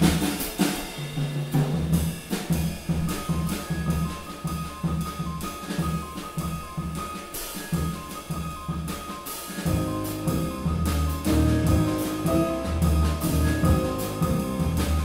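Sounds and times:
drum kit rhythm: 0.0s - 15.0s
plucked double bass: 9.7s - 15.0s.

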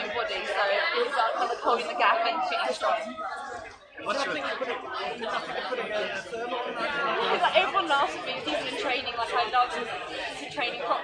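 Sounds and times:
background voices chattering: 0.0s - 11.0s.

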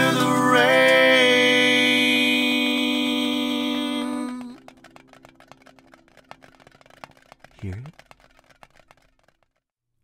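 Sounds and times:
small clicks: 4.0s - 9.7s.

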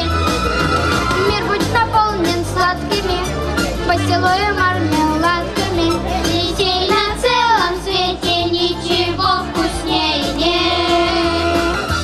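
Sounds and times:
pop backing track with bass beat: 0.0s - 12.0s
children singing in unison: 5.5s - 11.9s.

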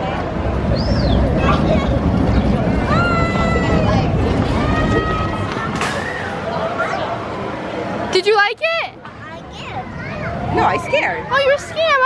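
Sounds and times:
roller coaster rumbling on track: 0.0s - 12.0s.

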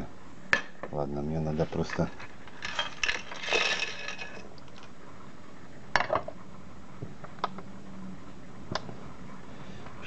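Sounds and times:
small metal parts clattering: 2.6s - 4.9s.

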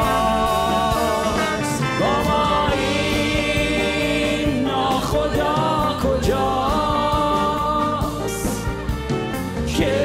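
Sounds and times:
choir singing held notes: 0.0s - 8.6s, 9.7s - 10.0s
live band with strings and winds: 0.0s - 10.0s.

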